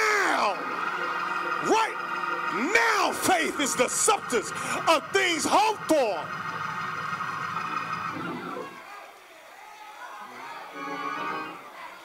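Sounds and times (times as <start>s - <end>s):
congregation calling out: 0.0s - 7.3s
held music chord: 0.0s - 8.1s.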